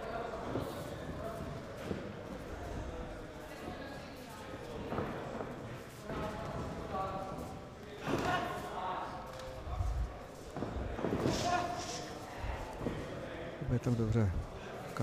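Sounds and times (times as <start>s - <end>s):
voices calling out in hall: 6.0s - 15.0s.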